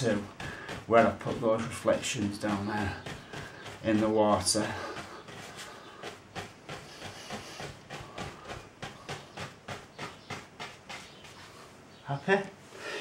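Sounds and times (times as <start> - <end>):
paintbrush stroking on canvas: 0.0 - 12.0.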